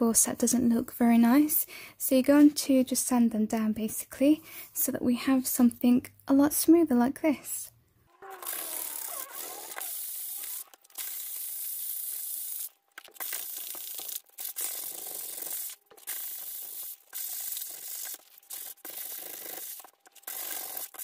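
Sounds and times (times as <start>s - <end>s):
hand sanding board: 13.3s - 21.0s.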